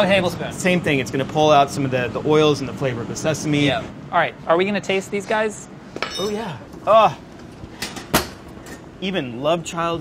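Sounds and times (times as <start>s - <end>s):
glass dish clinking on rack: 6.0s - 6.4s.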